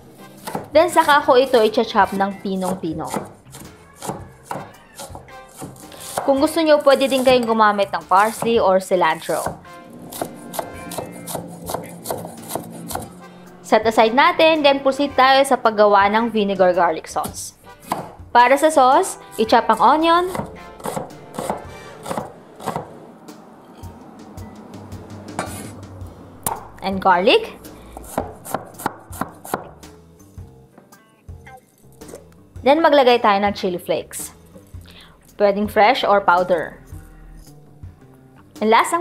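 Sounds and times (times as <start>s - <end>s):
knife chopping on wooden board: 0.4s - 0.7s, 2.6s - 6.4s, 8.1s - 8.6s, 17.8s - 18.2s, 19.7s - 22.9s, 27.9s - 29.8s.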